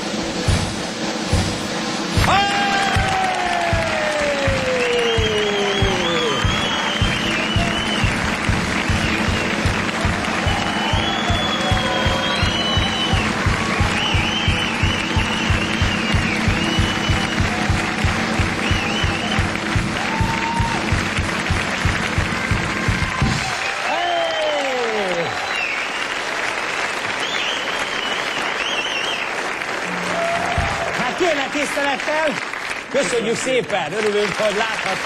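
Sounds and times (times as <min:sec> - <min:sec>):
audience clapping and cheering: 0:00.0 - 0:35.0
up-tempo dance music: 0:02.2 - 0:23.4
long falling tone: 0:02.3 - 0:23.6.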